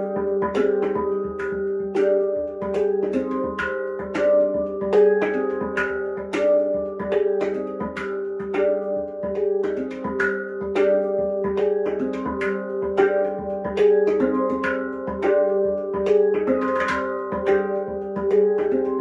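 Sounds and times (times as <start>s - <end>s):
handpan struck notes: 0.0s - 19.0s.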